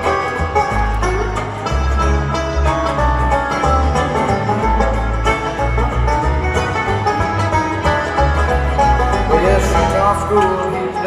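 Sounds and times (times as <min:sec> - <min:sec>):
bluegrass string band playing: 0:00.0 - 0:11.0
pulsing bass line: 0:00.0 - 0:11.0.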